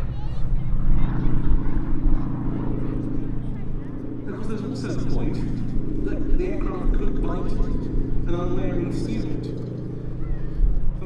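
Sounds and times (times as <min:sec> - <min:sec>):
propeller plane engine drone: 0:00.0 - 0:11.0.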